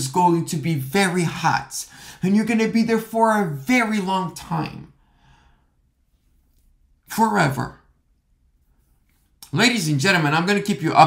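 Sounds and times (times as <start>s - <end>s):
faint exhale: 5.0s - 5.8s.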